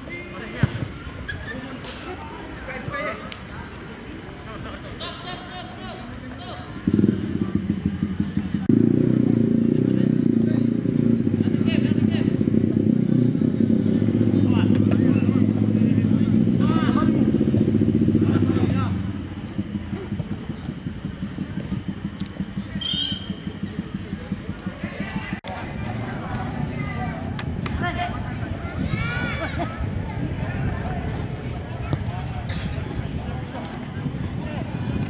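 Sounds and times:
engine running: 5.7 - 35.0.

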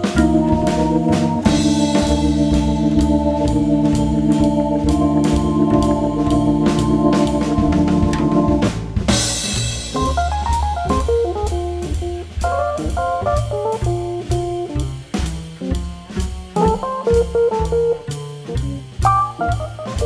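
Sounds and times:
single-note melodic solo: 0.0 - 8.7
organ chord: 0.0 - 9.8
drum kit cymbal beat: 0.0 - 20.0
stepping bass line: 0.0 - 20.0.

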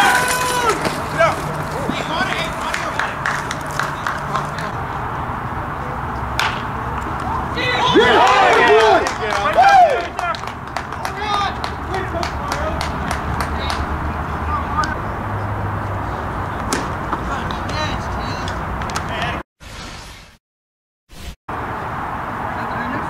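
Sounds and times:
people shouting and yelling: 0.0 - 4.8, 6.4 - 15.0
faint voices: 0.0 - 12.8.

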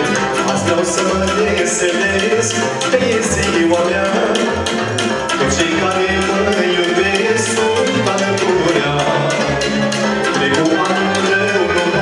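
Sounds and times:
folk band with percussion: 0.0 - 12.0.

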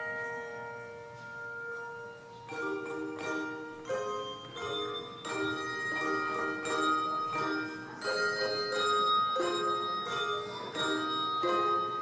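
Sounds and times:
handbell chords ringing: 0.0 - 12.0.

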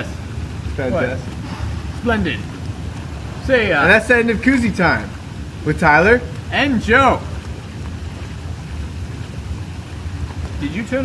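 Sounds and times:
hot tub jets bubbling water: 0.0 - 11.0.

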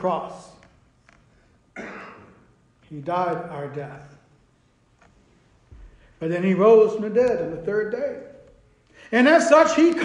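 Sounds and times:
man clearing throat: 1.8 - 2.6.

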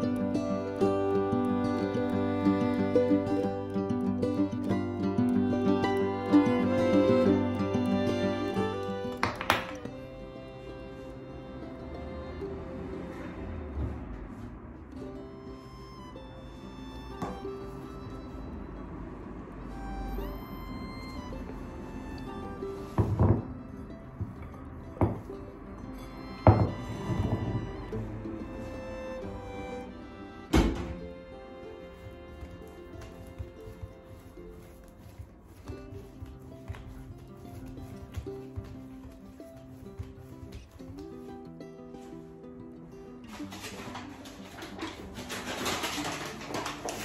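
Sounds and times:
background music: 0.0 - 13.4
utensils tapping on wooden table: 9.2 - 9.8.

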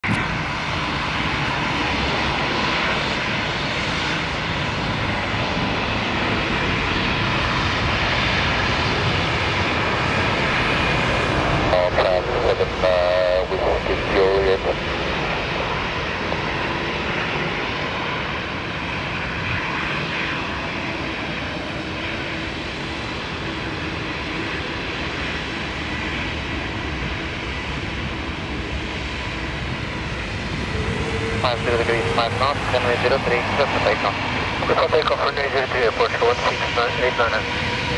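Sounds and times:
jet engines rumbling at low thrust: 0.0 - 37.9.

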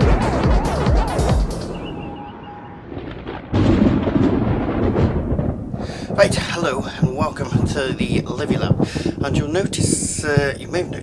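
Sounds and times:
electronic intro music: 0.0 - 3.0
loud low rumble: 0.0 - 9.3.

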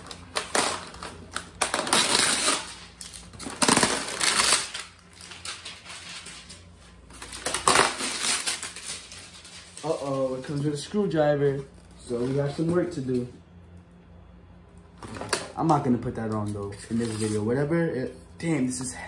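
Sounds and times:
foam packaging rustling and clattering: 0.0 - 10.9.

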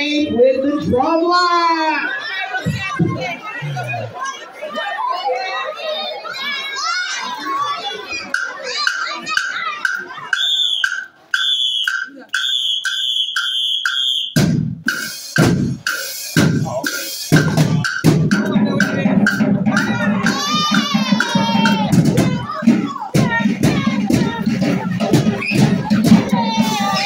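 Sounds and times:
crowd chatter: 0.0 - 27.0
drumline playing: 8.1 - 27.0
bass drum and snare hits: 10.8 - 27.0.

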